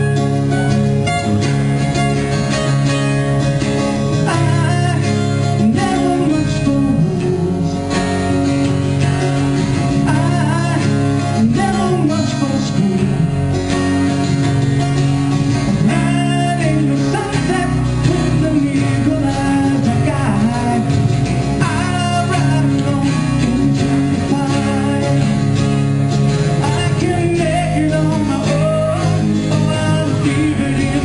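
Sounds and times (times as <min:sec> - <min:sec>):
live band guitar chords: 0:00.0 - 0:31.0
person singing: 0:04.2 - 0:08.2, 0:09.8 - 0:13.4, 0:15.6 - 0:25.5, 0:26.6 - 0:31.0.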